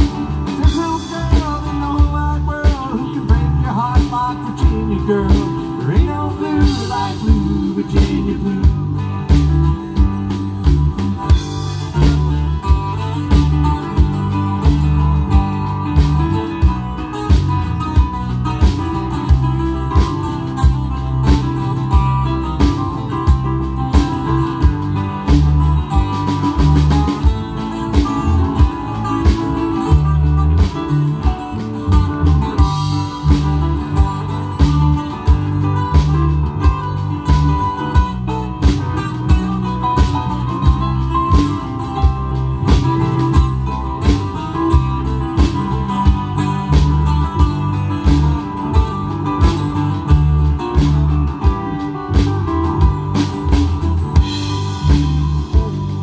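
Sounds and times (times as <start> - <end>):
live rock band instrumental: 0.0 - 56.0.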